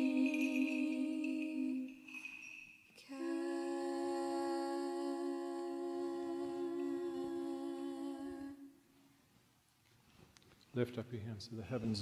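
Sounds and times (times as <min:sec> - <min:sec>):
singers humming a chord: 0:00.0 - 0:02.2, 0:03.0 - 0:08.8.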